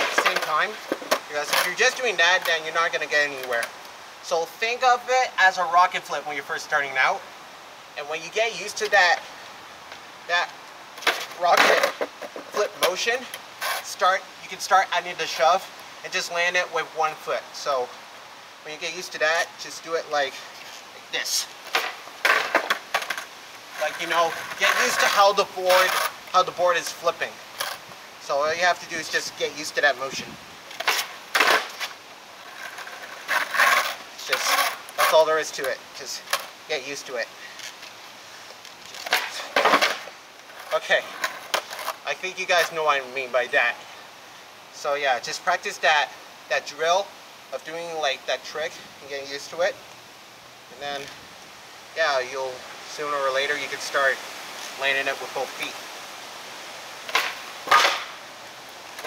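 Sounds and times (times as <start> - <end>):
skateboard clattering onto asphalt: 0.0 - 2.6, 11.0 - 13.0, 21.6 - 26.2, 30.7 - 36.5, 39.0 - 42.0, 57.0 - 58.2.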